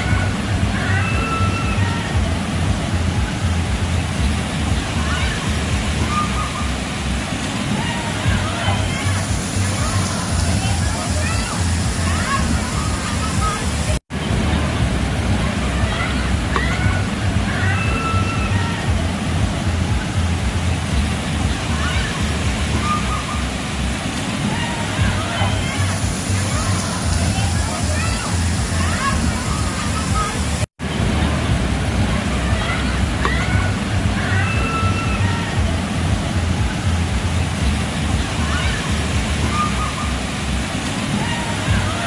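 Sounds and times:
people calling out: 0.0 - 2.5, 4.8 - 7.0, 7.6 - 14.0, 15.4 - 19.2, 24.3 - 30.6, 32.0 - 37.0, 38.1 - 42.0
faint distant voices: 0.0 - 42.0
fountain water splashing into pool: 0.0 - 42.0.

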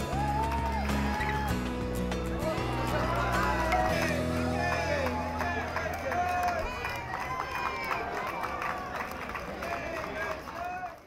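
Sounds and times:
background music: 0.0 - 7.1
crowd of adults and children talking: 1.0 - 11.0.

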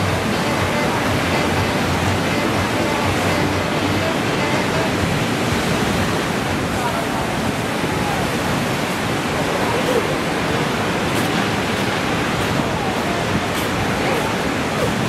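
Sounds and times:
faint voices: 0.0 - 15.0
ocean surf breaking: 0.0 - 15.0.

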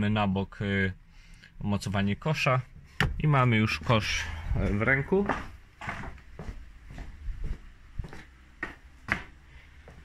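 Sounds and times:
footsteps on concrete: 3.8 - 10.0.

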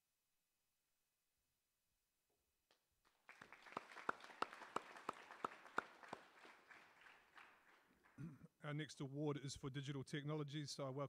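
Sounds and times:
audience applauding: 3.1 - 8.3
nearby person clapping: 3.1 - 8.3.

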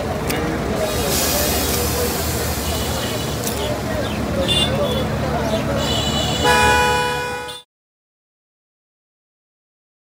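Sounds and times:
street traffic rumble: 0.0 - 7.7
vehicle horn honk: 4.4 - 5.1, 5.8 - 7.7.

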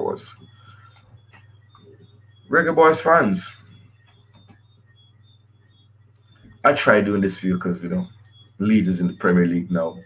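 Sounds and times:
faint high chirps: 0.0 - 10.0
low hum: 0.0 - 10.0.

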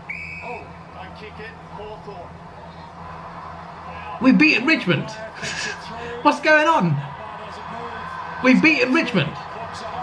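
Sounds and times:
steady low hum: 0.0 - 10.0
faint television commentary: 0.4 - 10.0.

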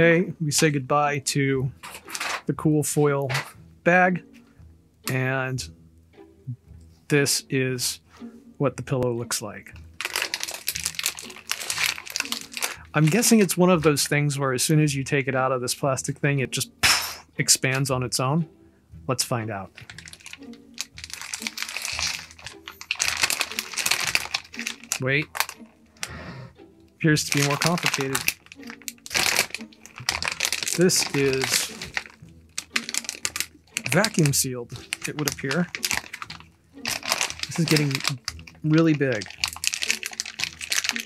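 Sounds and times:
plastic bag crinkling: 10.0 - 13.4, 19.8 - 25.7, 27.2 - 41.0.

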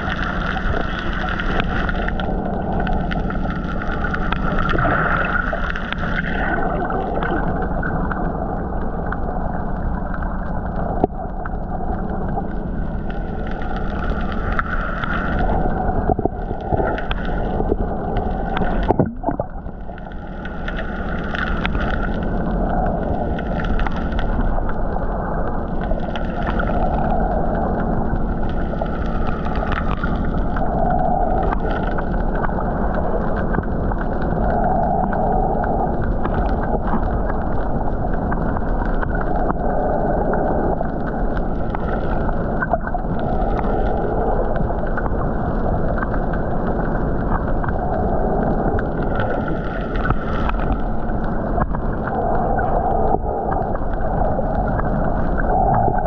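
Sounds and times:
faint steady hum: 0.0 - 56.0
underwater water noise: 0.0 - 56.0.

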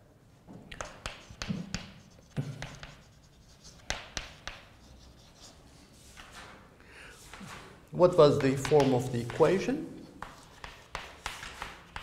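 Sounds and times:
chalk tapping on board: 0.8 - 5.5, 8.1 - 12.0
chalk scratching on chalkboard: 0.8 - 6.4, 7.2 - 12.0.

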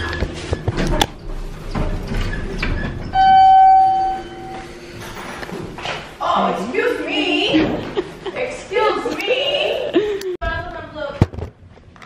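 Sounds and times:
elevator electronic beep: 3.1 - 5.0.

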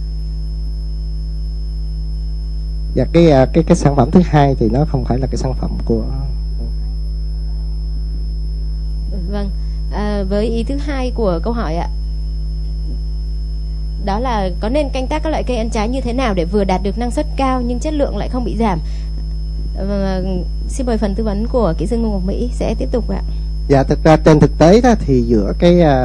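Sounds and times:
electrical mains hum: 0.0 - 26.0
faint high whine: 0.0 - 26.0
high-pitched tone: 2.9 - 8.3, 9.1 - 12.0, 14.0 - 26.0.

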